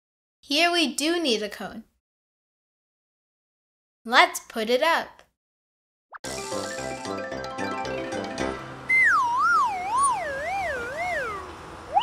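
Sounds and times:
light children's music: 6.2s - 11.5s
wobbling whistle sound effect: 8.9s - 12.0s.

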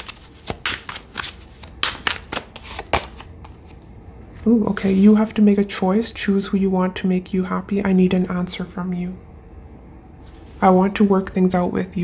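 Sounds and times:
cards shuffled by hand: 0.0s - 3.8s.

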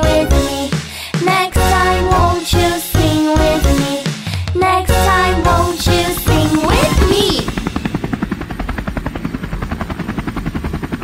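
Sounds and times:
helicopter rotor chop: 0.0s - 11.0s.

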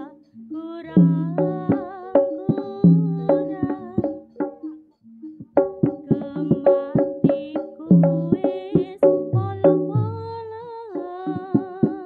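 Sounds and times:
drum strokes: 0.0s - 12.0s.

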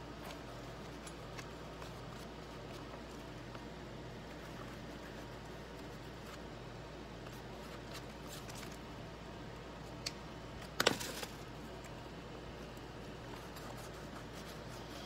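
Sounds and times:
low room hum: 0.0s - 15.0s.

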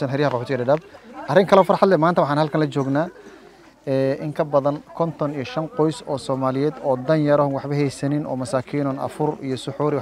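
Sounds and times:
man speaking: 0.0s - 3.2s, 3.8s - 10.0s.

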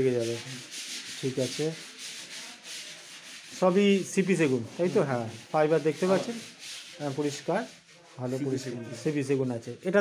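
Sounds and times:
rasping sanding noise: 0.0s - 9.3s.

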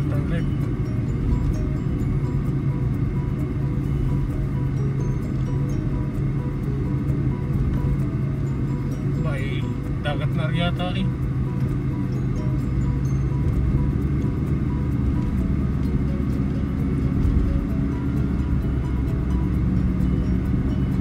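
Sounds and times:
car driving on paved road: 0.0s - 21.0s.

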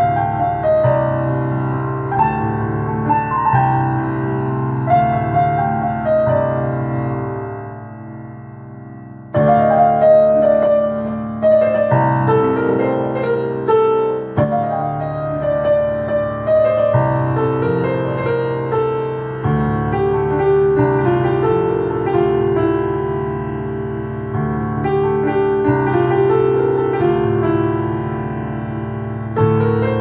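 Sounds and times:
electronic keyboard melody: 0.0s - 30.0s.

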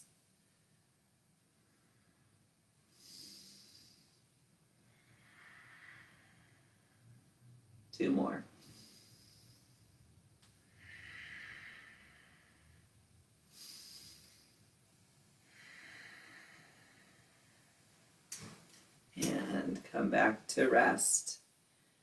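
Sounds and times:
person breathing slowly: 1.6s - 7.4s, 8.6s - 18.0s.

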